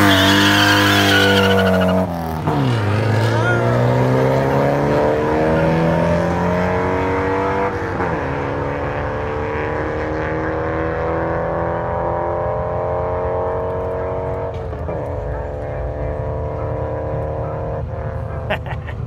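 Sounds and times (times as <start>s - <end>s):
car engines accelerating hard: 0.0s - 19.0s.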